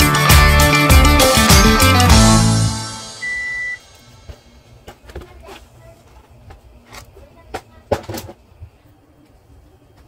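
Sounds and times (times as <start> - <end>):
background music: 0.0 - 4.8
short high beep: 3.2 - 3.8.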